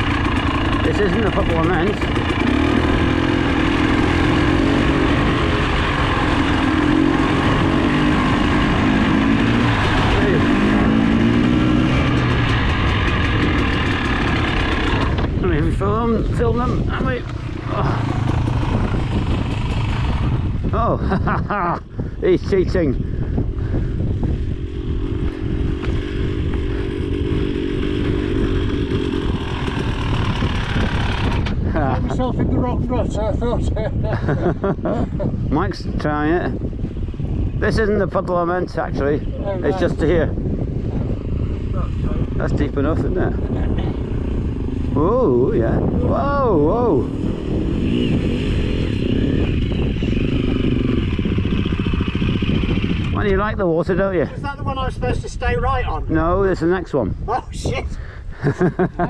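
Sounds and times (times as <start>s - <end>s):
motorcycle engine running: 0.0s - 56.0s
constant low rumble: 0.0s - 59.0s.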